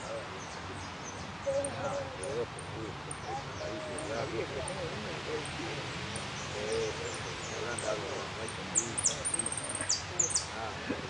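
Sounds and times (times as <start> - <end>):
murmur of people talking: 0.0 - 11.0
finch chirping: 8.7 - 10.5.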